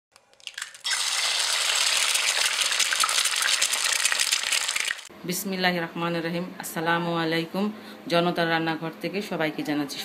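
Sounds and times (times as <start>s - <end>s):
food sizzling in hot oil: 0.4s - 5.1s.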